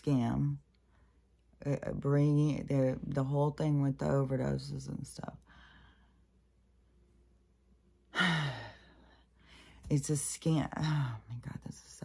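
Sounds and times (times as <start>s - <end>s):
woman speaking: 0.0s - 0.6s, 1.6s - 5.4s, 9.8s - 12.0s
woman sighing heavily: 8.1s - 9.0s.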